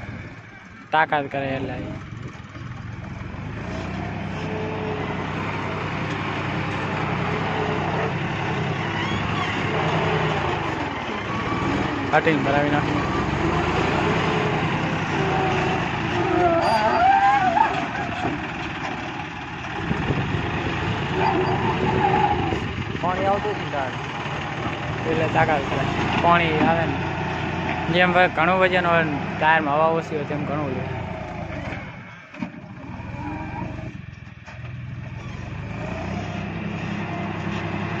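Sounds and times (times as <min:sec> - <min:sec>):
diesel tractor engine running: 0:00.0 - 0:38.0.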